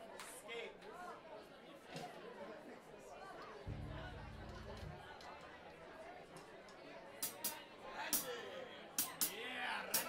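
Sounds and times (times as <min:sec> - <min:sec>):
faint crowd chatter: 0:00.0 - 0:10.0
low electric bass guitar note: 0:03.7 - 0:05.2.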